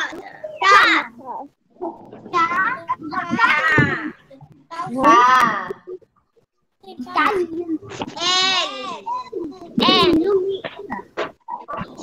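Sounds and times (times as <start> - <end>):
children calling out: 2.3 - 5.8, 8.0 - 10.9.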